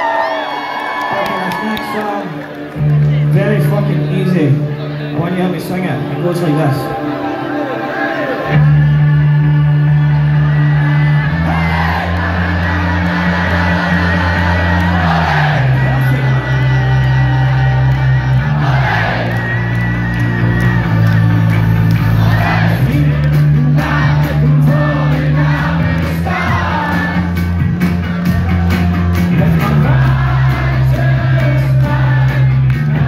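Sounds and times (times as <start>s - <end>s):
crowd singing along: 6.9s - 33.0s
rock band playing loudly: 8.2s - 33.0s
heavy bass line: 8.4s - 33.0s.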